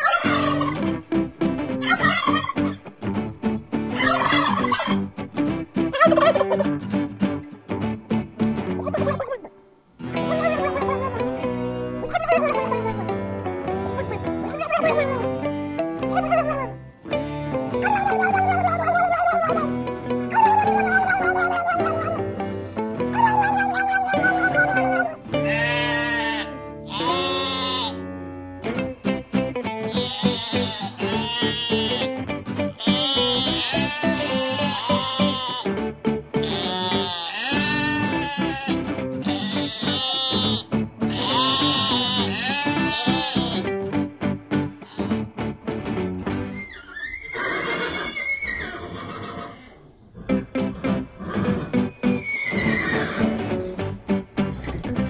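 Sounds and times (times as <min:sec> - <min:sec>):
background music: 0:00.0 - 0:46.6, 0:50.2 - 0:55.0
sheep bleating: 0:23.0 - 0:29.2, 0:29.8 - 0:43.7, 0:44.8 - 0:45.3
horse whinnying: 0:46.4 - 0:53.4.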